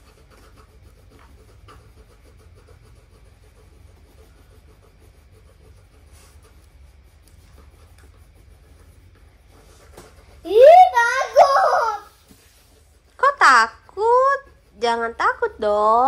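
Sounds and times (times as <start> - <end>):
low room hum: 0.0 - 16.0
pencils scratching on paper: 0.0 - 16.0.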